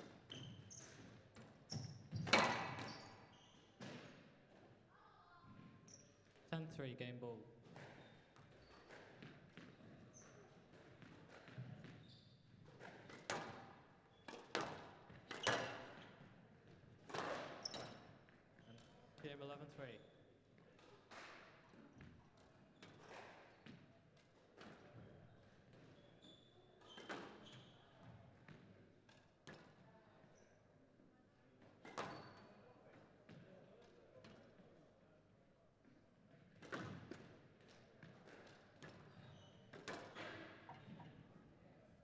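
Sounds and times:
shoe squeaks: 0:00.2 - 0:01.1, 0:01.7 - 0:03.8, 0:05.9 - 0:06.2, 0:11.5 - 0:12.6, 0:17.6 - 0:18.8, 0:25.9 - 0:28.1, 0:32.0 - 0:32.6, 0:39.0 - 0:41.1
squash ball knocks and thuds: 0:36.6 - 0:37.3.

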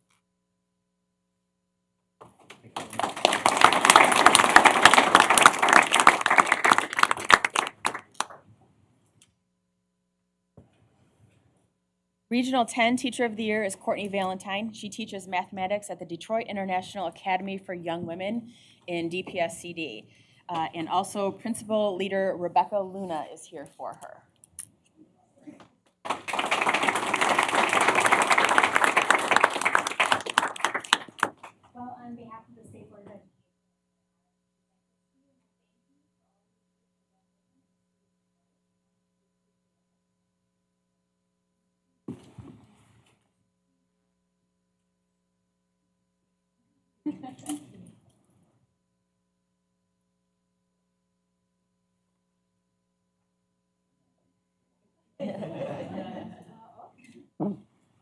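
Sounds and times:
roomful of people applauding: 0:02.4 - 0:08.5, 0:26.0 - 0:31.7.

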